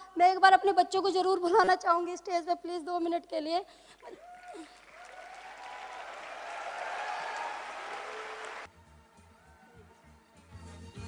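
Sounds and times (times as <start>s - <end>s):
audience applause: 4.1s - 8.7s.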